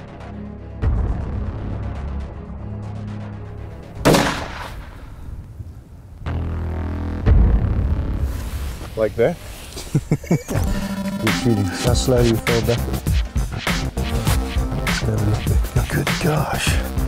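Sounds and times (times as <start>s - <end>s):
background music with deep bass: 0.0s - 4.7s, 6.3s - 8.8s, 10.3s - 17.0s
rifle shot: 4.0s - 5.2s.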